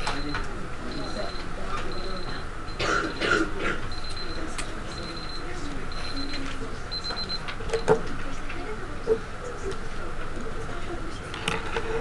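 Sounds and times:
students talking quietly: 0.0 - 12.0.

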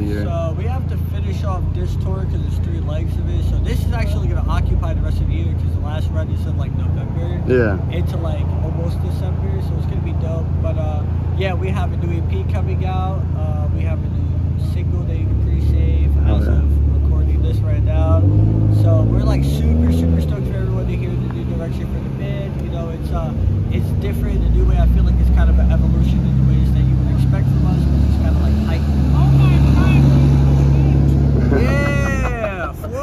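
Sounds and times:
man talking: 0.0 - 33.0
vehicle engine rumbling: 0.0 - 33.0.

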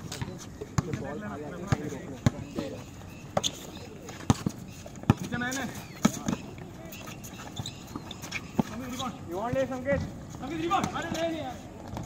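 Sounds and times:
basketball bouncing on concrete: 0.1 - 2.7, 3.3 - 6.6, 7.8 - 12.0.

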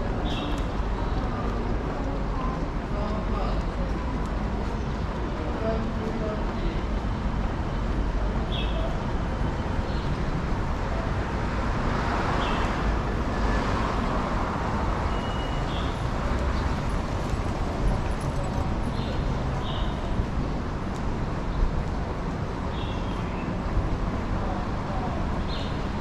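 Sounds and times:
city road traffic: 0.0 - 26.0.

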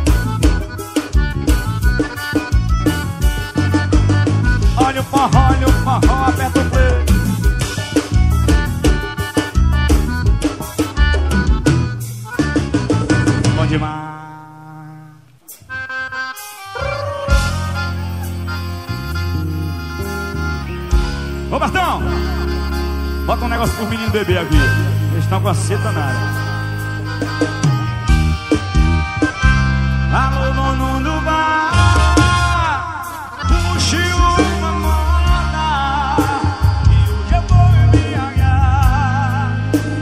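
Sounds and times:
drum beat: 0.0 - 13.7, 23.4 - 29.7
live band playing instrumental: 0.0 - 14.0, 15.0 - 40.0
accordion: 0.0 - 40.0.

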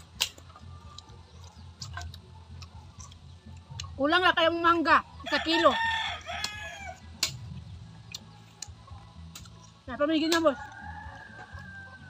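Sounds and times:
mouth clicks and smacks eating: 0.0 - 4.0.

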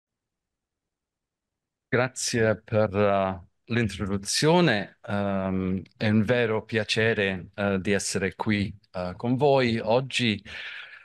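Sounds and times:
man speaking: 2.0 - 11.0.

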